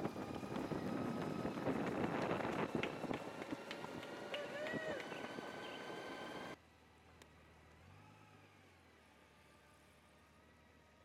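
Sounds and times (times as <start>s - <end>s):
rushing road and air noise: 0.0s - 6.6s.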